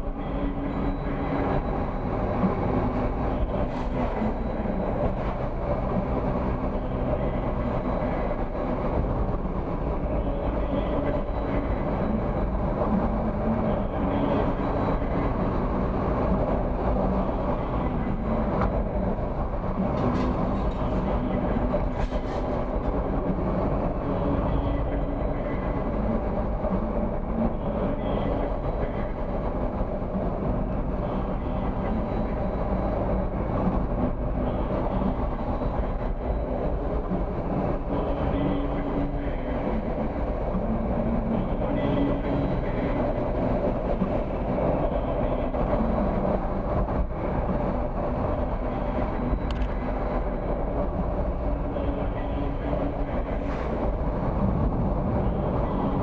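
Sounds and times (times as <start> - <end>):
car engine hum: 0.0 - 56.0
tyre road noise: 0.0 - 56.0.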